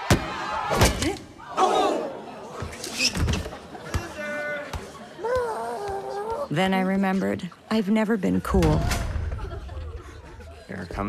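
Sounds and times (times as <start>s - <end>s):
crowd noise in a gym: 0.0s - 11.0s.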